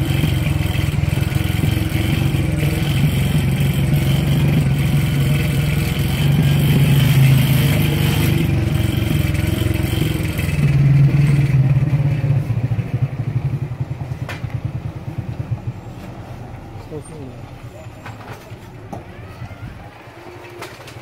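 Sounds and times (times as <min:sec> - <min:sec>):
vehicle engine running: 0:00.0 - 0:21.0.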